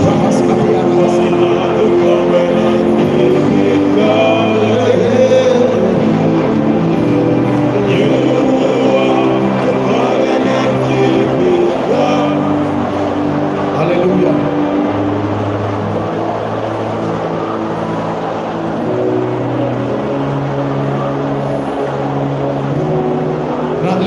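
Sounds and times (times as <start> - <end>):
murmur of voices: 0.0 - 24.0
sustained keyboard chords: 0.0 - 24.0.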